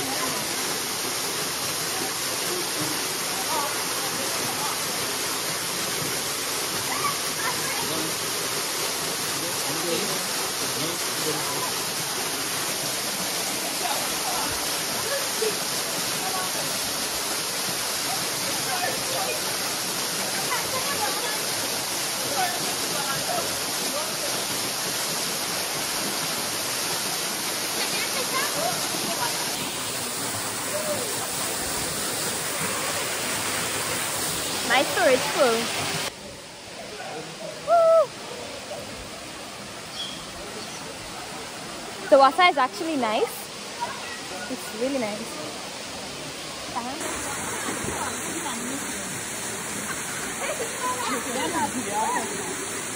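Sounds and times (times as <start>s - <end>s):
waterfall rushing: 0.0s - 52.9s
person exclaiming: 37.7s - 38.1s.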